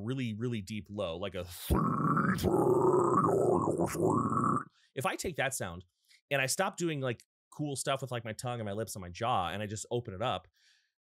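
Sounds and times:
man growling deep metal vocal: 1.7s - 4.7s.

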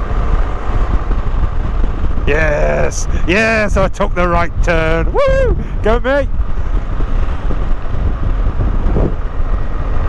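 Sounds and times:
motorcycle engine rumble: 0.0s - 10.0s
wind rushing over microphone: 0.0s - 10.0s.

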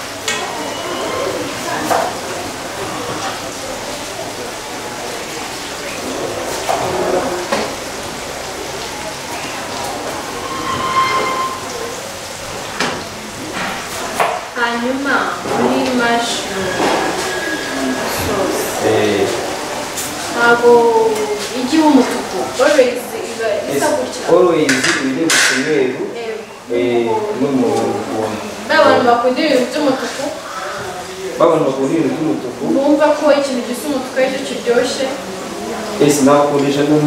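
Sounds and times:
food sizzling in a saucepan: 0.0s - 37.0s
short steady tone: 10.4s - 12.0s.

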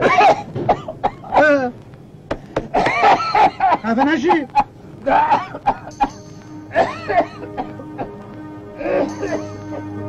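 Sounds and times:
man coughing and grunting: 2.7s - 6.1s, 6.7s - 8.1s.

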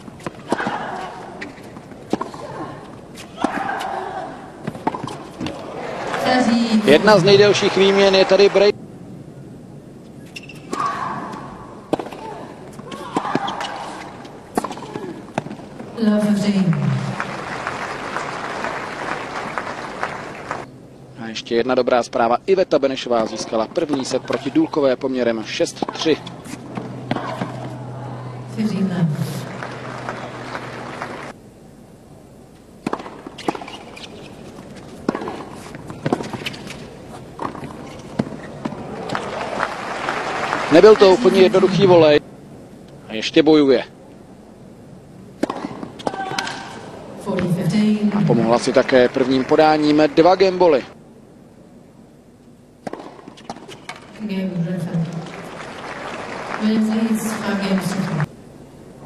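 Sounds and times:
low crowd ambience: 0.0s - 59.0s
steady low hum: 14.0s - 39.7s
racket striking tennis ball: 32.8s - 38.8s, 45.4s - 47.5s, 52.8s - 54.2s
tennis ball pops: 45.4s - 46.7s, 52.8s - 54.0s.

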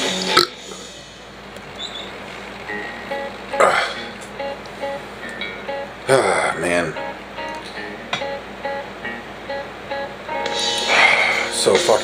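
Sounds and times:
man burping: 0.3s - 0.7s, 3.5s - 4.2s, 6.1s - 6.6s.

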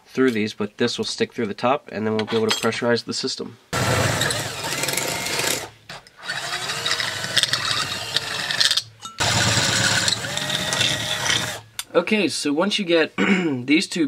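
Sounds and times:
cordless drill boring through metal: 3.8s - 11.6s.

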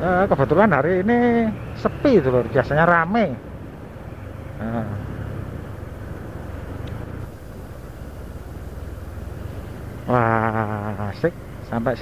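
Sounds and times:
road noise: 0.0s - 12.0s
vehicle engine drone: 0.0s - 12.0s.

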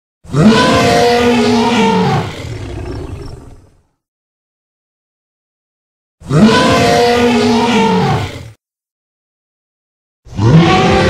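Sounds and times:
dinosaur roaring: 0.3s - 3.8s, 6.2s - 8.6s, 10.3s - 11.0s.

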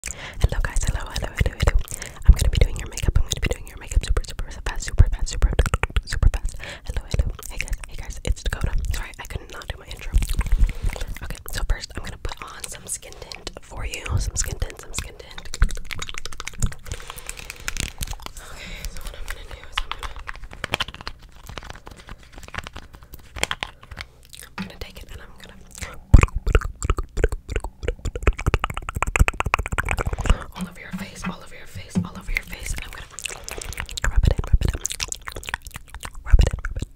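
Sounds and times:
small mouth clicks: 0.0s - 36.9s
soft whispering: 0.1s - 15.6s, 16.8s - 20.8s, 24.6s - 26.2s, 30.0s - 35.0s, 36.2s - 36.9s
soft low thumps: 30.1s - 33.2s
fingernails tapping plastic bottle: 30.3s - 32.8s.

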